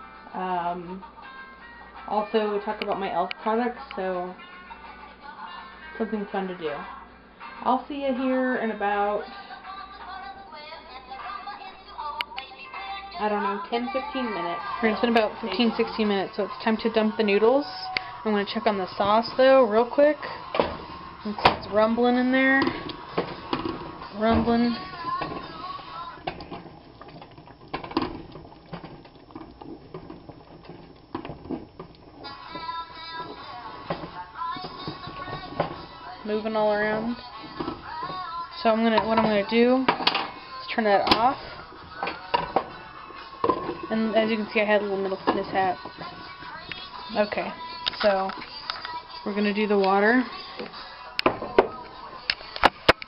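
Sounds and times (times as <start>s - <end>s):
background singing or music: 0.0s - 53.0s
spoon stirring sauce in pot: 22.6s - 36.2s, 41.4s - 49.2s.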